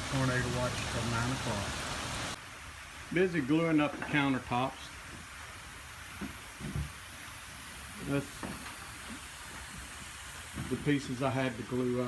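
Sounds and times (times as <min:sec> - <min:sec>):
rain falling on building: 0:00.0 - 0:12.0.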